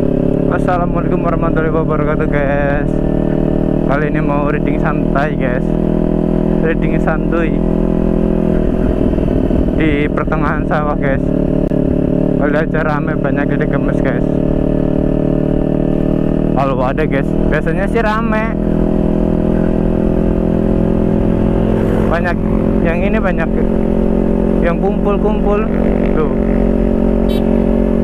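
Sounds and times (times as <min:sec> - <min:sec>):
motorcycle engine cruising: 0:00.0 - 0:28.0
road and wind noise: 0:00.0 - 0:28.0
rough low rumble: 0:06.6 - 0:13.1, 0:19.2 - 0:28.0.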